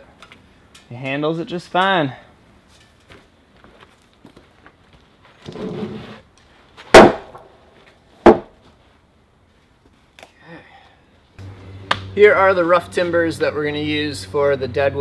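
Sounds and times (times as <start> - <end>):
timber scraping: 5.2 - 8.8
loud wooden knocks: 8.2 - 8.6.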